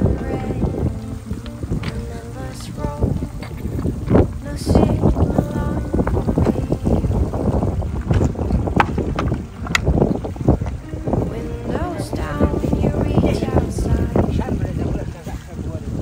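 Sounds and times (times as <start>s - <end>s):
footsteps on stream stones: 0.0s - 16.0s
shallow stream over rocks: 0.0s - 16.0s
wind buffeting microphone: 0.0s - 16.0s.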